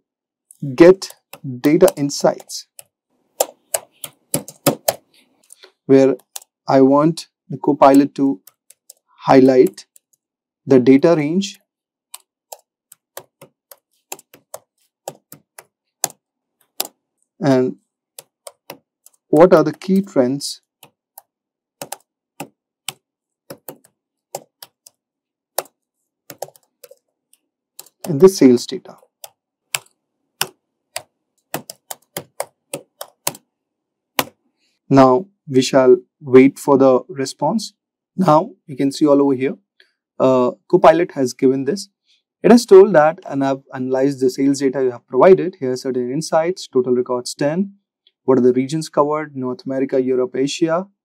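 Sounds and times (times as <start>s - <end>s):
computer keyboard typing: 0.8s - 5.1s, 6.1s - 6.6s, 7.8s - 10.2s, 12.1s - 17.0s, 18.2s - 19.3s, 20.8s - 33.5s.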